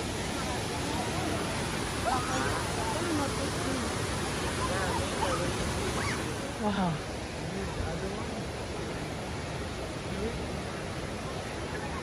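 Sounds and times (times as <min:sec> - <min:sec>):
faint voices: 0:00.0 - 0:12.0
stream cascading over rocks: 0:00.0 - 0:12.0.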